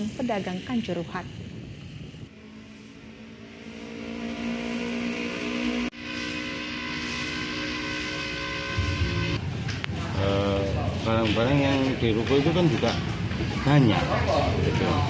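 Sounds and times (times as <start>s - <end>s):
vehicle engine running: 2.3s - 13.4s.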